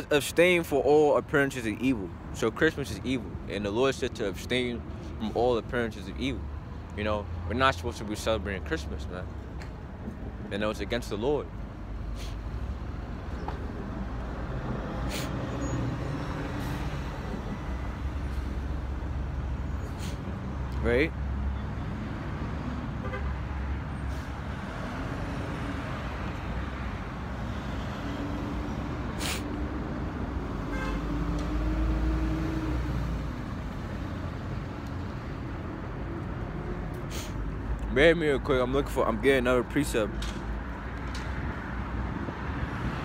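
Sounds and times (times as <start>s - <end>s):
city street traffic rumble: 0.0s - 43.0s
long level tone from vehicle: 15.5s - 20.0s.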